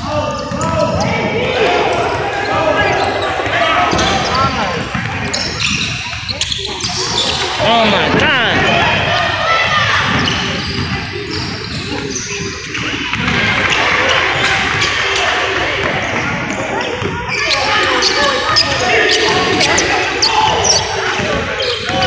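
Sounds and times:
people calling out: 0.0 - 11.5
sneakers squeaking: 0.0 - 22.0.

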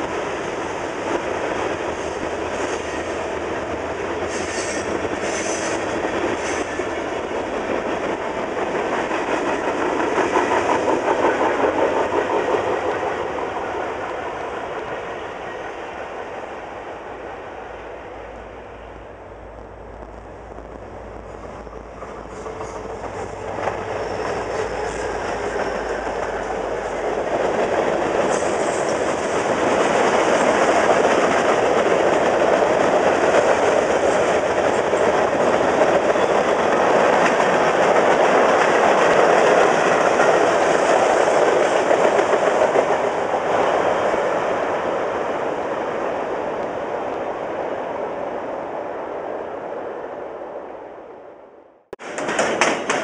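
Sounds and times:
freight train wheels on rails: 0.0 - 50.3, 52.0 - 53.0.

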